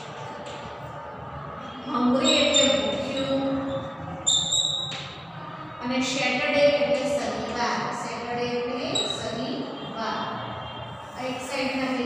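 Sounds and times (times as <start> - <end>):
woman reading aloud: 5.8 - 10.3, 11.2 - 12.0.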